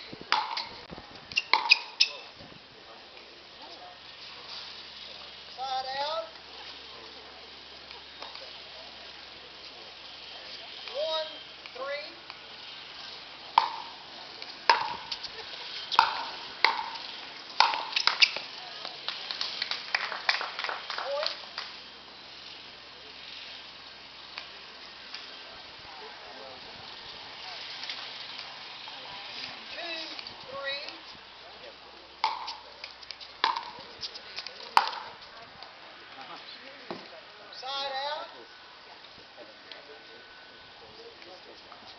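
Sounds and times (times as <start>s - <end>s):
paddles hitting plastic ball: 0.2s - 1.8s, 13.6s - 15.3s, 15.9s - 18.5s, 32.2s - 35.2s.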